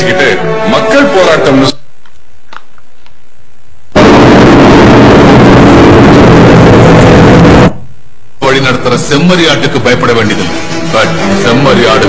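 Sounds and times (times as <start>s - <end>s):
loud rumbling blast: 4.0s - 7.8s.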